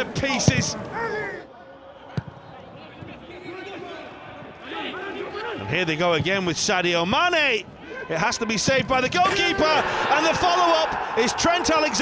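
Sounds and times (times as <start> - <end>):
faint shouts of players: 0.3 - 5.7.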